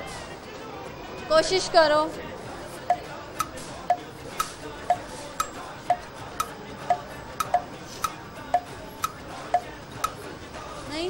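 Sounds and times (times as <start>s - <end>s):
clock ticking: 2.9s - 10.2s.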